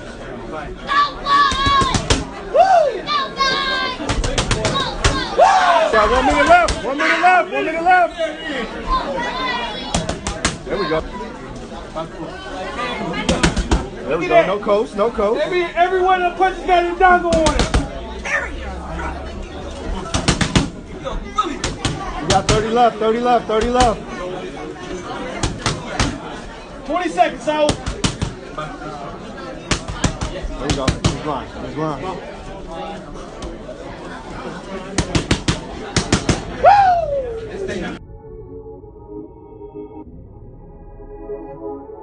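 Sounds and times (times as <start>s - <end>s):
boxing gloves hitting mitts: 1.5s - 2.3s, 4.1s - 5.3s, 17.3s - 17.9s, 20.1s - 20.8s, 29.7s - 31.2s, 35.0s - 36.6s.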